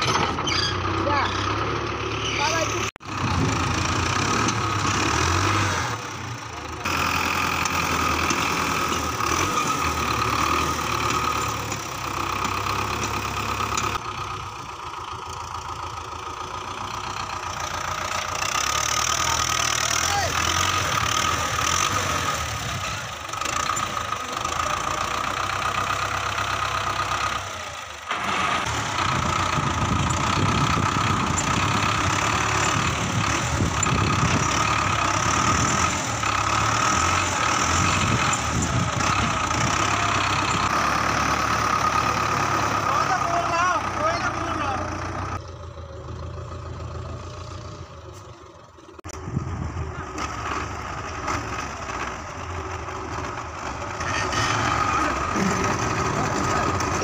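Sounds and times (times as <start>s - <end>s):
tractor diesel engine running: 0.0s - 57.0s.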